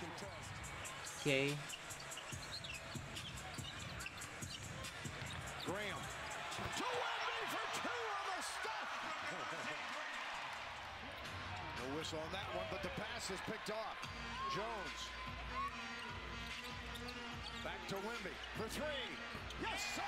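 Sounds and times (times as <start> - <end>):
arena crowd noise: 0.0 - 20.0
sneakers squeaking: 0.1 - 7.7, 15.5 - 20.0.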